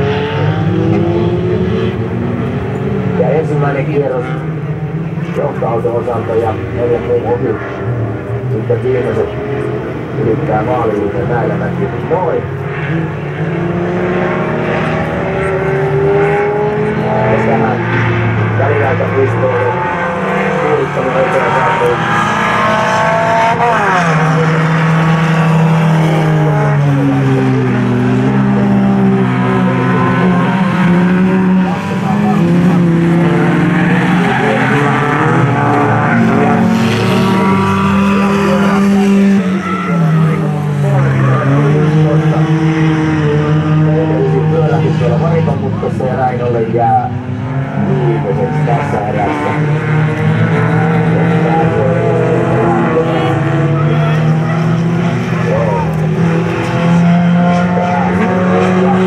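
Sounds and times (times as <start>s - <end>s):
race car engines revving: 0.0s - 59.0s
tyres squealing and skidding: 33.2s - 38.8s.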